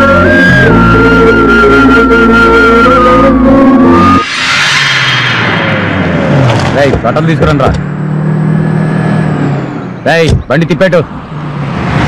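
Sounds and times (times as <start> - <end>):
film music with sustained tones: 0.0 - 6.3
street traffic noise: 4.6 - 12.0.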